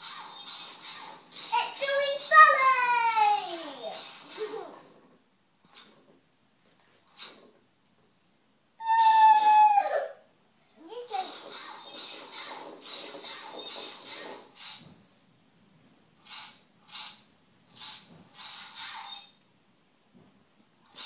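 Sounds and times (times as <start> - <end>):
toy robot motors whirring: 0.0 - 5.1, 10.9 - 14.9, 16.2 - 19.4.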